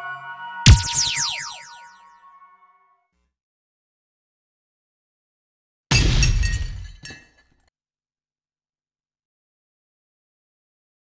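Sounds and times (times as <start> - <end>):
glass shattering: 5.9 - 7.6.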